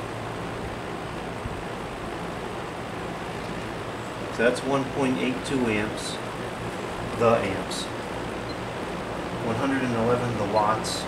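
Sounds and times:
box fan air rush: 0:00.0 - 0:11.0
low motor hum: 0:00.0 - 0:11.0.

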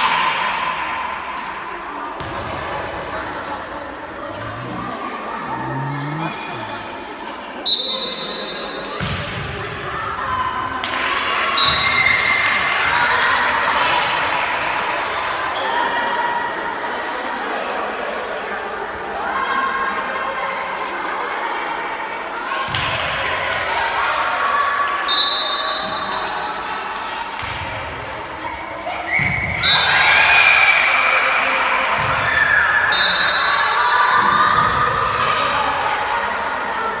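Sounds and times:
voices in a hall: 0:00.0 - 0:37.0
spectators calling and chattering: 0:01.7 - 0:10.8
volleyball struck with a thump: 0:09.0 - 0:09.6
referee's whistle: 0:32.9 - 0:33.5.

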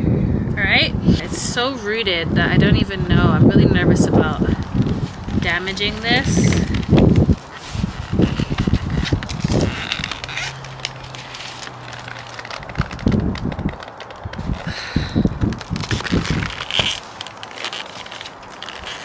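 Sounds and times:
wind gusts on microphone: 0:00.0 - 0:17.1
plastic pot crackling and clicking: 0:04.5 - 0:19.0.

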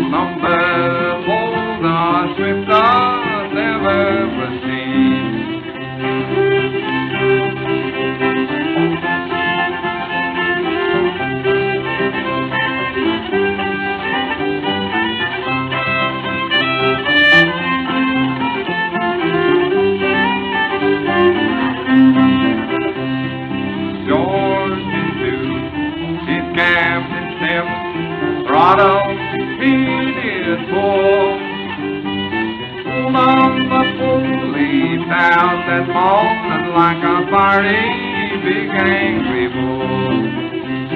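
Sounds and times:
fiddle melody: 0:00.0 - 0:40.9
guitar accompaniment: 0:00.0 - 0:40.9
plucked banjo: 0:00.0 - 0:40.9.

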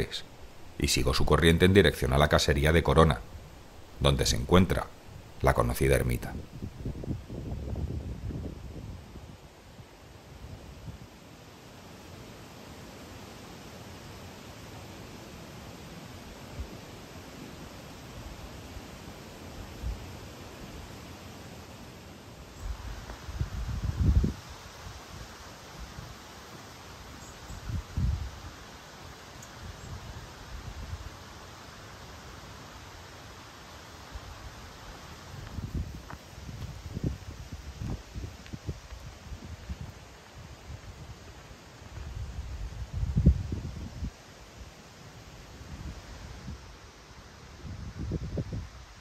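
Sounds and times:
faint steady hiss: 0:00.0 - 0:49.0
wind rustling tree leaves: 0:00.0 - 0:49.0
wind gusts buffeting microphone: 0:02.0 - 0:11.1, 0:22.7 - 0:26.2, 0:27.5 - 0:28.5, 0:35.3 - 0:44.2, 0:47.5 - 0:49.0.

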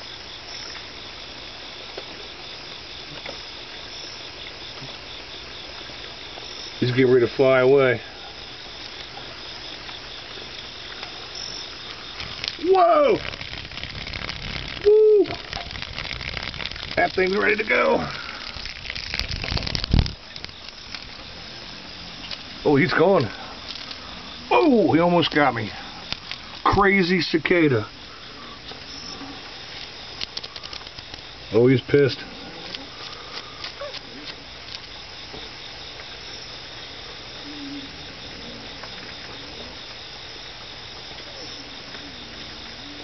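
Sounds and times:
chorus of night insects: 0:00.0 - 0:43.0.

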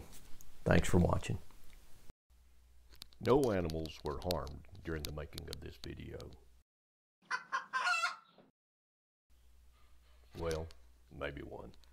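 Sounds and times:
rooster crowing: 0:07.3 - 0:08.4.

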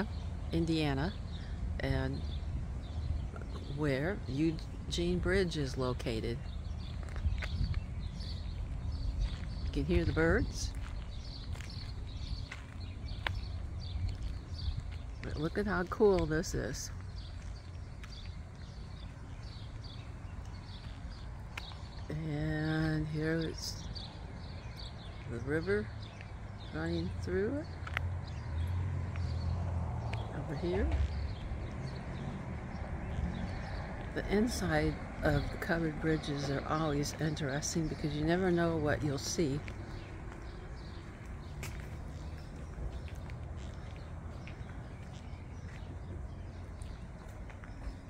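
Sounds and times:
steady low rumble: 0:00.0 - 0:25.6
birds chirping: 0:00.0 - 0:48.0
footsteps on gravel: 0:06.3 - 0:22.1, 0:27.7 - 0:48.0.

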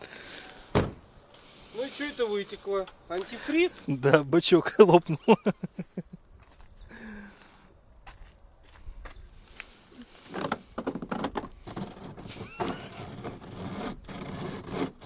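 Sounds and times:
rope scraping rustles: 0:09.5 - 0:15.0.

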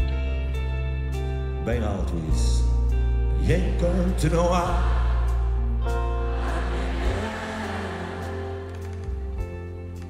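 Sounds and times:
live pop band music: 0:00.0 - 0:10.0.

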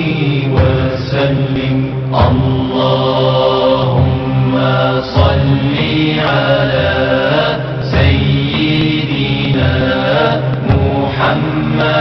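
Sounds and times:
person chanting melodically: 0:00.0 - 0:12.0.

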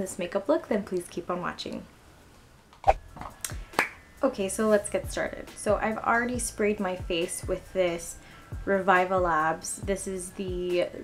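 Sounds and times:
finger snapping: 0:02.8 - 0:04.0.

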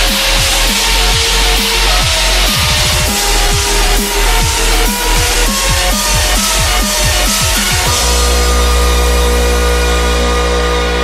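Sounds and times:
deep steady bass note: 0:00.0 - 0:11.0
sustained synthesizer chord: 0:00.0 - 0:11.0.

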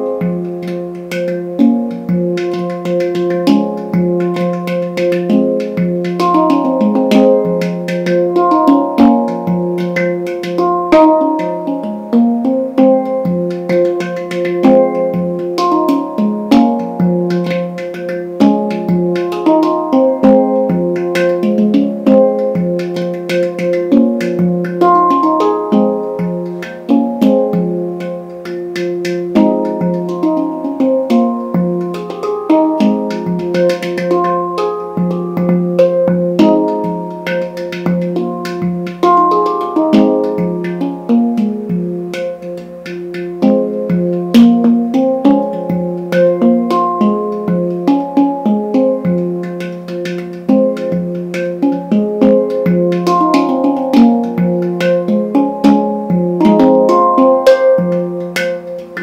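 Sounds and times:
handpan ringing notes and taps: 0:00.0 - 0:59.0.

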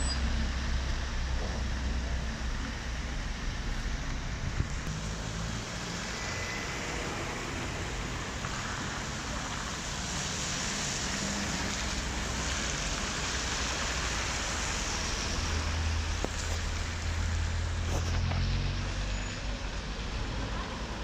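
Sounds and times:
low engine hum: 0:00.0 - 0:19.0
tyre hiss on wet road: 0:04.9 - 0:21.0.

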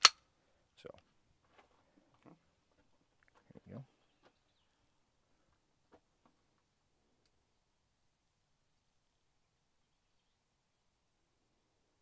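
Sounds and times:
handgun metallic click: 0:00.0 - 0:00.2.

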